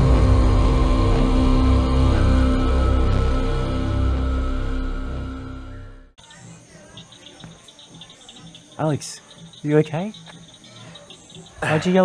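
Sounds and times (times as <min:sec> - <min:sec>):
high chirps: 0:05.6 - 0:12.0
crickets chirping: 0:06.2 - 0:12.0.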